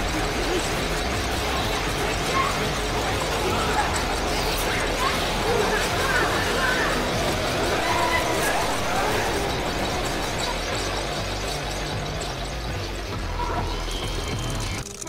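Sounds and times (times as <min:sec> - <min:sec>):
music: 0:00.0 - 0:15.0
voices: 0:00.0 - 0:15.0.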